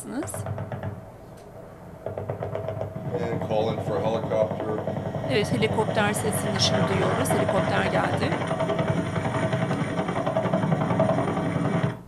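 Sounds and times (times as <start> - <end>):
helicopter rotor rumble: 0.0 - 12.0.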